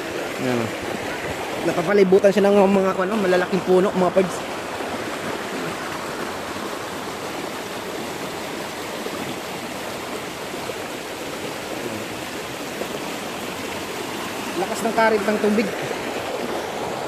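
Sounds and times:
creek rushing over rocks: 0.0 - 17.0.

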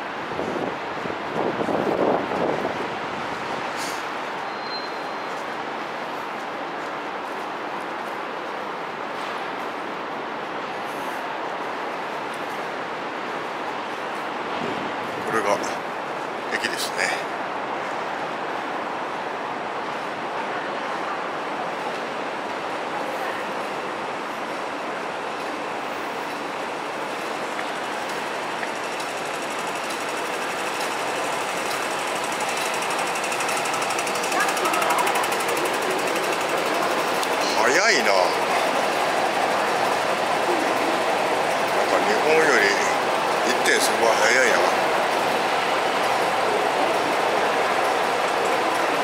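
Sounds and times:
escalator rattling and humming: 23.6 - 49.0.

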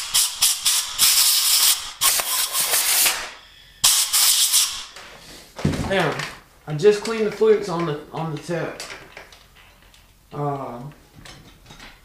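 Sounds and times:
air blowgun hissing blasts: 0.0 - 5.4.

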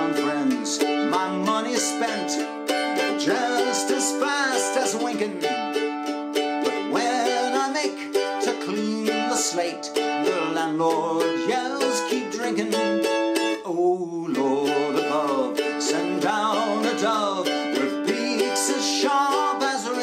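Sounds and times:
man singing folk song: 0.0 - 20.0
mandolin strumming: 0.0 - 20.0.

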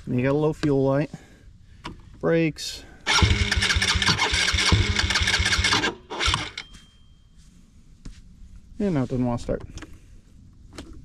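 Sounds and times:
electric starter cranking engine: 3.0 - 6.7.

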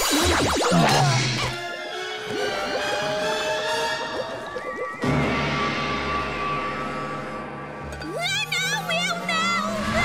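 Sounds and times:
cartoon music: 0.0 - 5.3.

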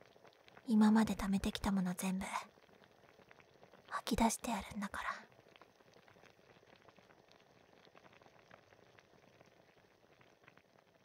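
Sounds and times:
food simmering with pops: 0.0 - 11.0.

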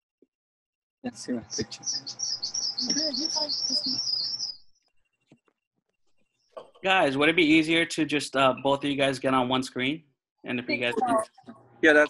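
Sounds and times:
small bird chirping: 1.3 - 4.9.

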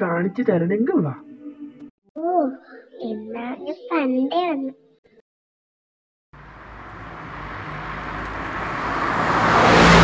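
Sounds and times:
car engine and road noise: 6.4 - 10.0.

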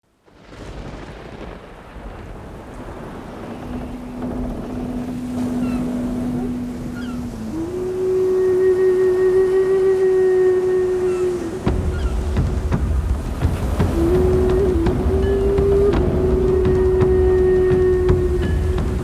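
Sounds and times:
river water rushing: 0.2 - 19.0
long held musical notes: 3.9 - 19.0.

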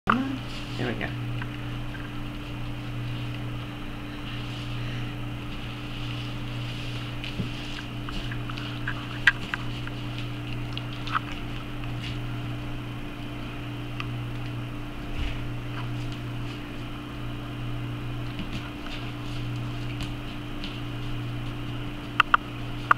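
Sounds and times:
low mechanical hum: 0.1 - 22.9.

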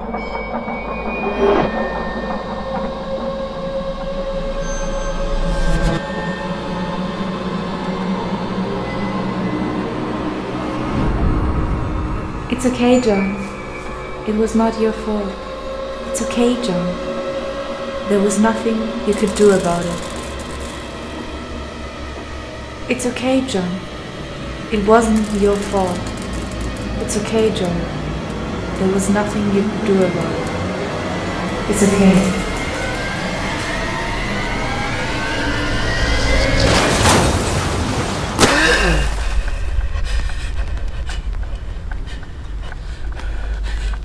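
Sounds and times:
screeching high tones: 0.0 - 7.1
rumbling metallic drone: 0.0 - 44.0
sharp impact hit: 36.4 - 39.4.

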